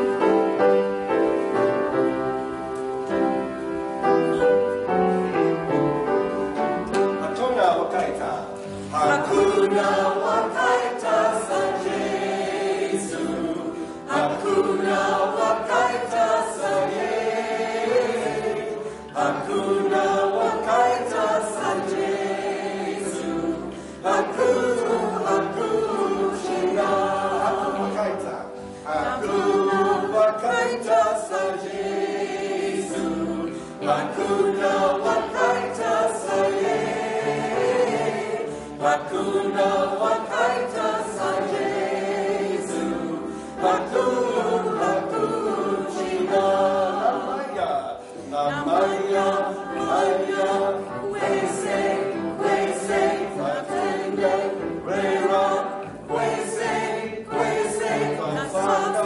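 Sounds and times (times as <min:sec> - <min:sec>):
group of voices singing: 0:08.5 - 0:59.0.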